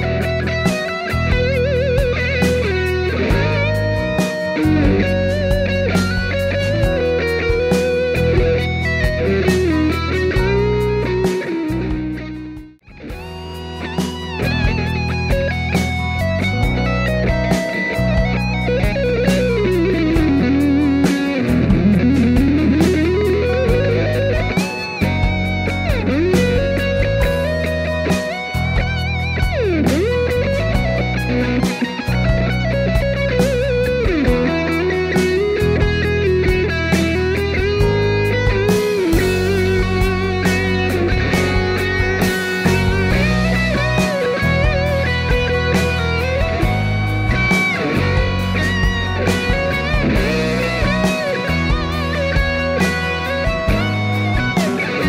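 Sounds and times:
backing track: 0:00.0 - 0:55.0
overdriven electric guitar lead: 0:00.0 - 0:55.0.

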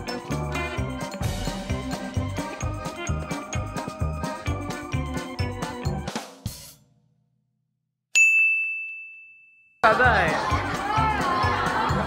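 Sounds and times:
music: 0:00.0 - 0:07.0, 0:09.8 - 0:12.0
bright bell ding: 0:08.2 - 0:09.8
crowd noise: 0:09.8 - 0:12.0.

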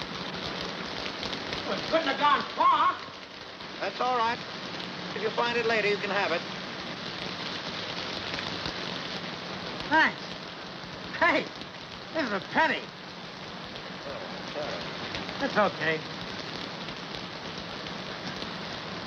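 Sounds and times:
steady rain falling: 0:00.0 - 0:19.0.

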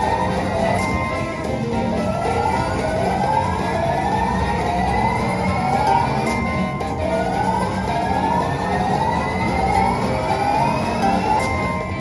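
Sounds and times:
slot machine tone climbing in pitch: 0:00.0 - 0:12.0.

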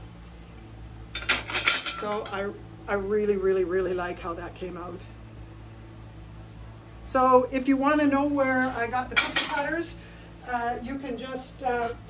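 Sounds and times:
ceramic dishes clinking: 0:01.2 - 0:02.4, 0:09.2 - 0:09.6.

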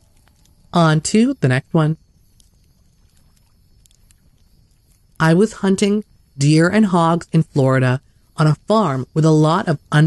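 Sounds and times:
faint clicks: 0:00.0 - 0:00.8, 0:02.0 - 0:05.2
faint background hiss: 0:00.0 - 0:10.0.

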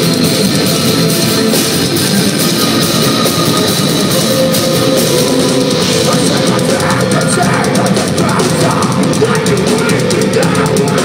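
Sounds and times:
metalcore band playing live: 0:00.0 - 0:11.0.

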